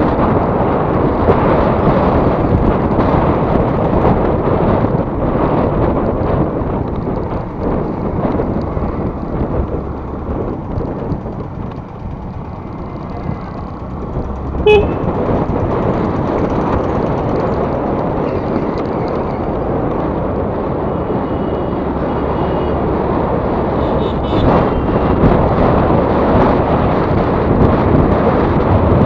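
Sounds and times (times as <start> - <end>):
wind and road noise: 0.0 - 29.0
scooter horn beep: 14.6 - 15.1, 23.8 - 24.9.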